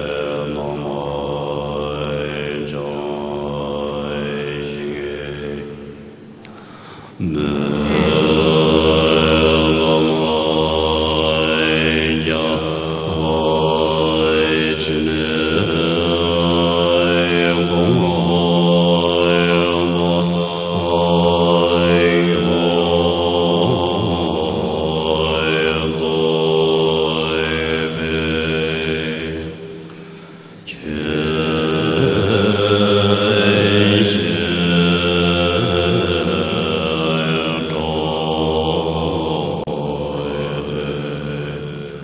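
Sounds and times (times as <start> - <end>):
low drone: 0.0 - 42.0
monks chanting in unison: 0.0 - 42.0.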